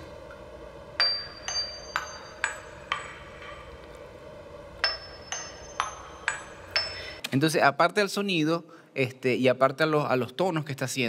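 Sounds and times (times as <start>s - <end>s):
music box notes: 1.0s - 3.5s, 4.8s - 7.2s.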